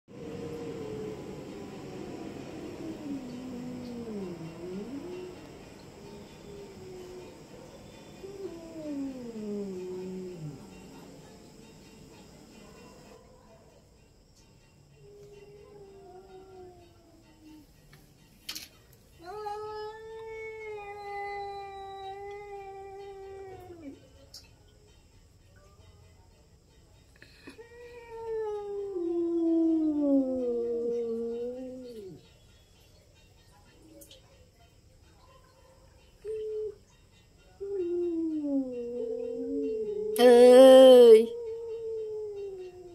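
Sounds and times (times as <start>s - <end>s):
cat growling: 0.2s - 11.4s, 37.8s - 42.9s
cats yowling: 0.2s - 11.4s, 15.0s - 17.6s, 19.2s - 24.0s, 27.4s - 32.3s, 37.5s - 42.9s.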